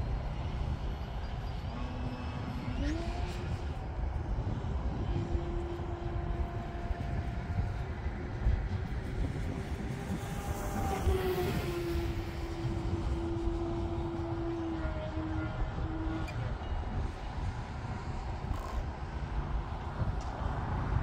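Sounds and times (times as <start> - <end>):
model plane motor humming: 0.0 - 20.9
wind rumble on microphone: 0.0 - 21.0.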